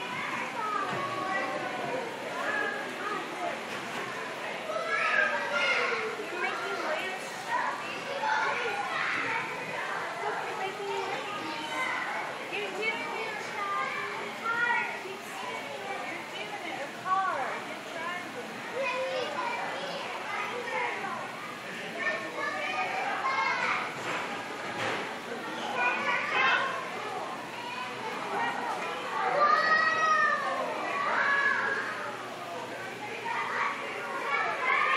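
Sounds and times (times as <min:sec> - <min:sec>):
children chattering: 0:00.0 - 0:34.9.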